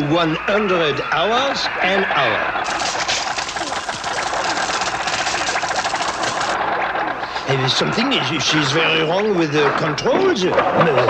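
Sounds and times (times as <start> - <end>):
fast mechanical chatter: 2.6 - 9.3.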